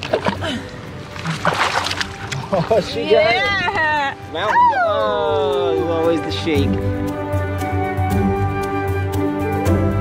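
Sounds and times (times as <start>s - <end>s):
water splashing: 0.0s - 4.3s.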